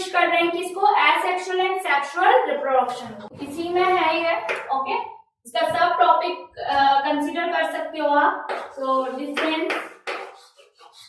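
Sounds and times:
person speaking: 2.3 - 5.0
chalk scratching on blackboard: 8.5 - 11.0.

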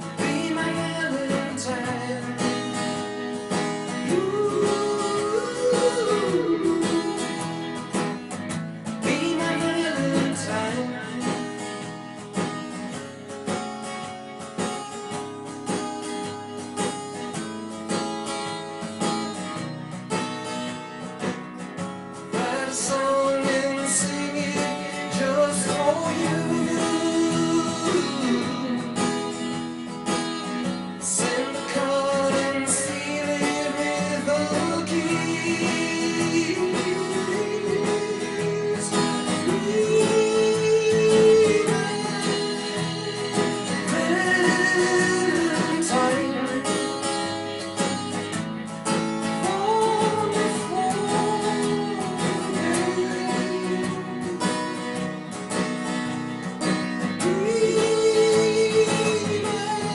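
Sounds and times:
man singing: 0.0 - 12.2, 22.2 - 59.9
acoustic guitar strumming: 0.0 - 59.9.

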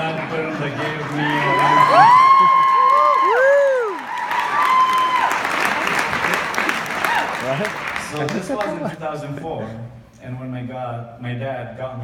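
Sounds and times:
audience applauding: 0.0 - 9.0
people whooping and cheering: 0.9 - 7.6.

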